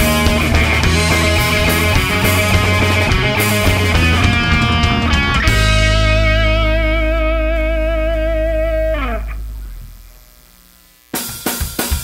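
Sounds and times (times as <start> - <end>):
low bass note: 0.0 - 10.7
electric guitar note with vibrato: 0.0 - 10.8.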